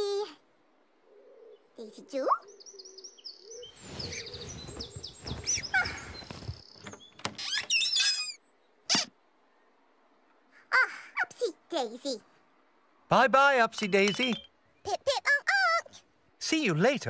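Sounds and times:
squeaky warbling calls: 7.4 - 9.2, 13.8 - 15.4
high whistles and chirps: 13.8 - 14.6.

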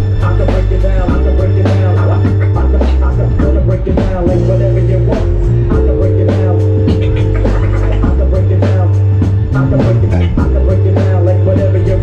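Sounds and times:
drum kit beat: 0.0 - 12.0
electric bass notes: 0.0 - 12.0
keyboard chords: 0.0 - 12.0.

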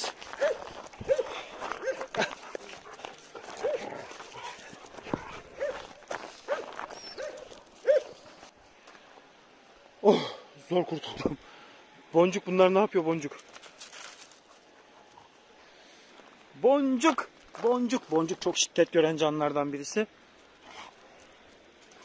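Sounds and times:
footsteps on gravel: 0.0 - 9.0, 17.1 - 18.6
dog barking: 0.4 - 2.3, 3.6 - 3.9, 5.6 - 5.9, 6.5 - 8.2.

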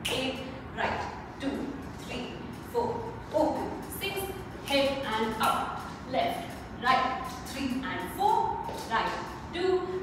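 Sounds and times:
woman speaking in short phrases: 0.0 - 10.0.

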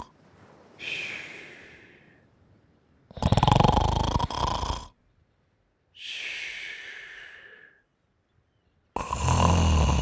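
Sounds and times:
loud rattling snore: 3.1 - 4.9, 9.0 - 10.0.

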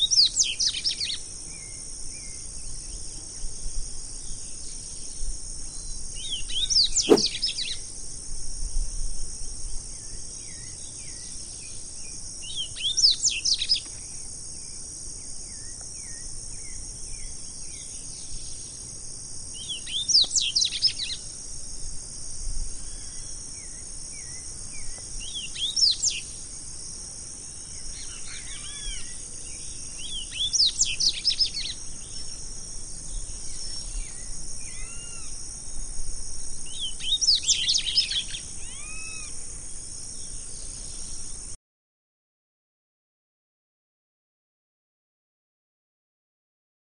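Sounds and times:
high insect hiss: 0.0 - 41.6
bird singing sweeping notes: 6.6 - 7.6
other birds calling: 7.0 - 7.6.

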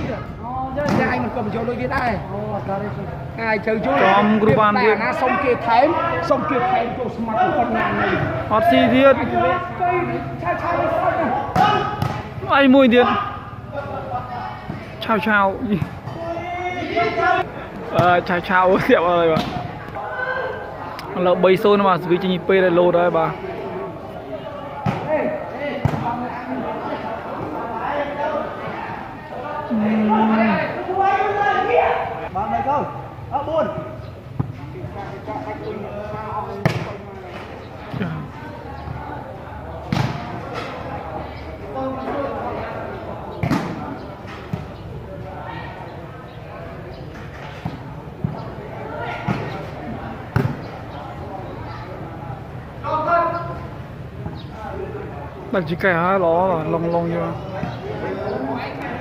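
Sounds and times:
spectators chattering: 0.0 - 59.0
volleyball hits: 11.4 - 12.5, 39.8 - 40.6.

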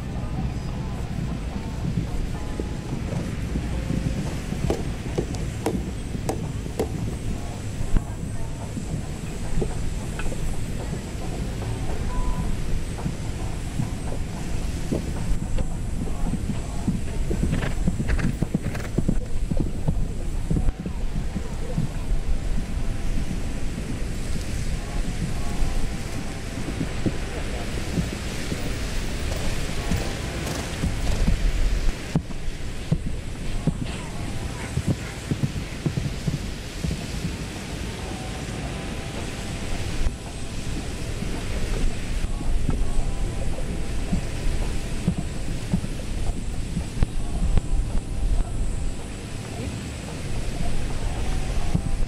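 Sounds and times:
distant music: 0.0 - 52.0
faint distant voices: 0.0 - 52.0
wind rumbling on microphone: 0.0 - 52.0
irregular knocks: 1.3 - 22.6.

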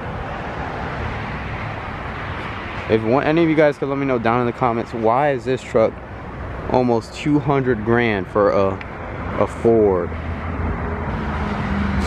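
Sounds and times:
traffic rushing: 0.0 - 12.0.

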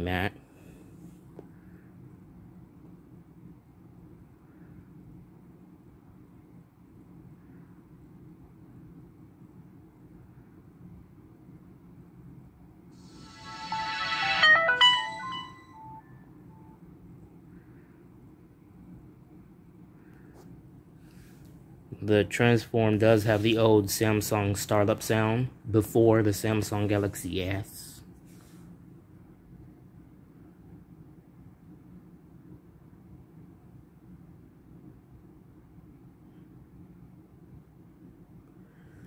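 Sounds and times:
faint low hum: 0.0 - 39.0
phone startup jingle: 13.0 - 16.2.

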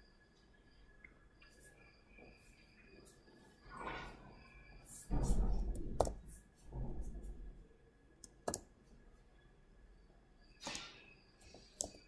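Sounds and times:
faint computer keyboard clicks: 8.2 - 8.7.

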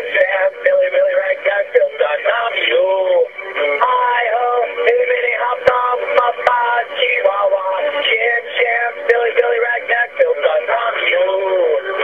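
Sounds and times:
man singing over phone line: 0.0 - 12.0.

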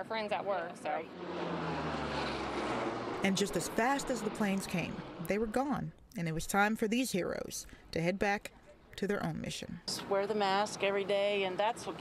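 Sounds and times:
turboprop plane flying overhead: 0.6 - 5.3.

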